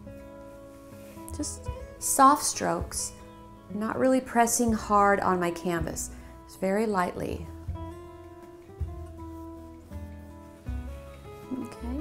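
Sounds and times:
plucked guitar music: 0.0s - 12.0s.

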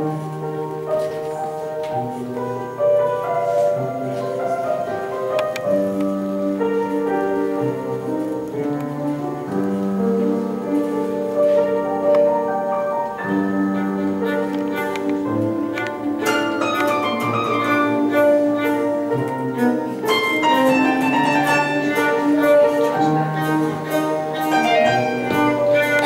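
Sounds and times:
bowed cello: 0.0s - 26.0s.

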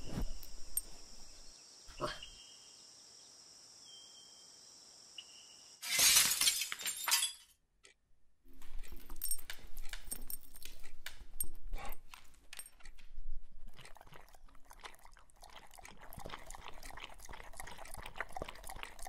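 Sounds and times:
dog chewing and slurping: 8.5s - 19.0s.

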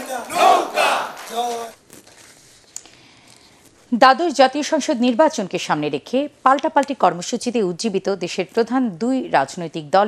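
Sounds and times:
large crowd shouting: 0.0s - 1.2s.

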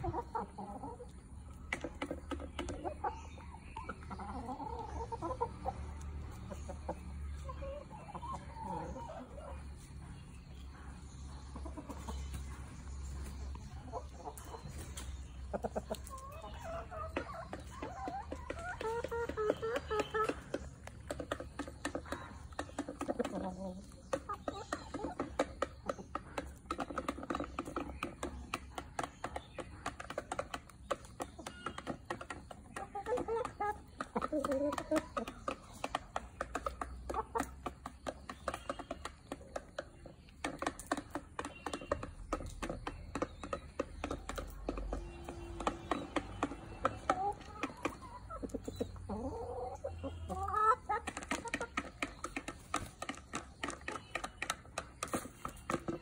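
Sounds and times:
chickens clucking: 0.0s - 56.0s.

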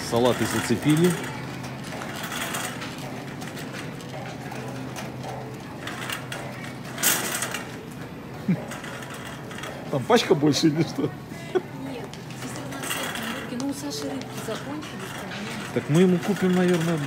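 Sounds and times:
shopping cart wheels rattling: 0.0s - 17.0s.

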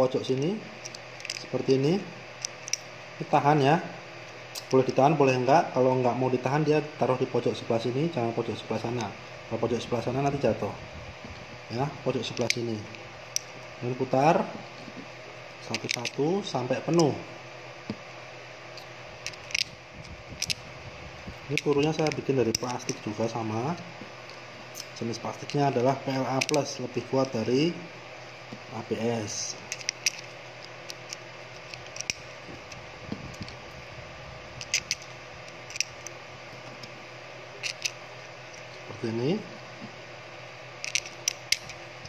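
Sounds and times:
steady low hum: 0.0s - 42.0s.

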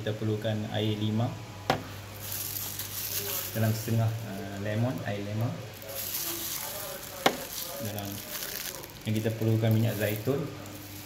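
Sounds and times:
plastic handling rustle: 2.2s - 11.0s.

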